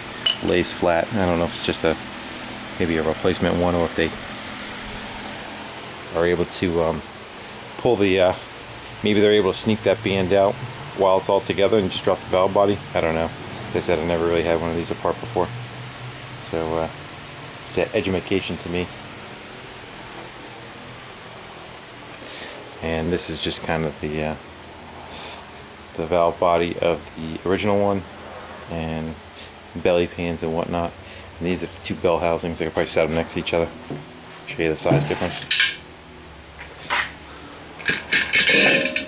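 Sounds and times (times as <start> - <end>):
room noise hiss: 0.0 - 39.0.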